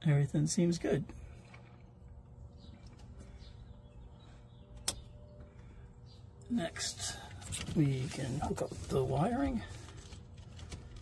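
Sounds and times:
faint low hum: 0:00.0 - 0:11.0
sharp click: 0:04.8 - 0:05.1.

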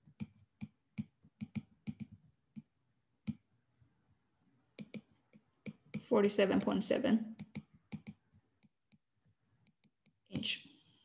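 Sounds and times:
stylus tapping on glass screen: 0:00.0 - 0:03.5, 0:04.8 - 0:09.1.

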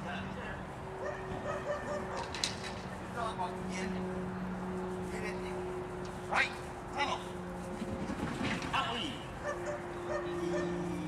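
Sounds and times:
steady low hum: 0:00.0 - 0:11.0
dog barking and yipping: 0:01.0 - 0:02.5, 0:09.4 - 0:11.0.

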